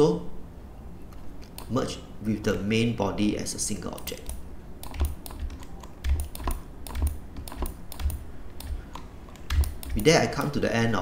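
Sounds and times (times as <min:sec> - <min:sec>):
computer keys clicking: 0:01.1 - 0:01.8, 0:03.9 - 0:10.2.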